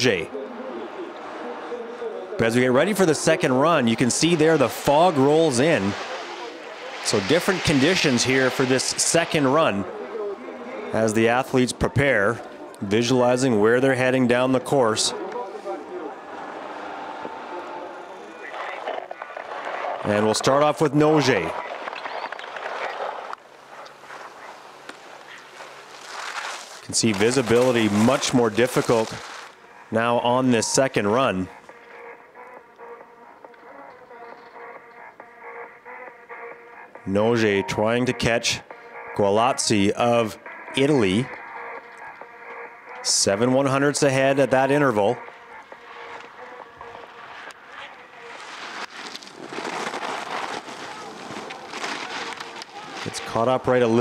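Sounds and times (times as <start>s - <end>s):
skis scraping on hard snow: 3.3s - 9.8s, 21.6s - 29.6s, 45.8s - 54.0s
burst of noise: 4.0s - 9.6s.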